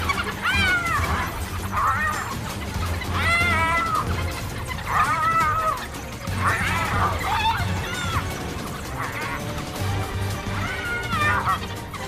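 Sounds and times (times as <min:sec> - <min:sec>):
animal squeals: 0:00.0 - 0:12.0.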